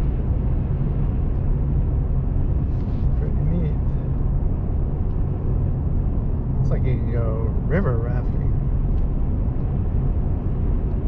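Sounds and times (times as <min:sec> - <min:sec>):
road and engine rumble in cabin: 0:00.0 - 0:11.0.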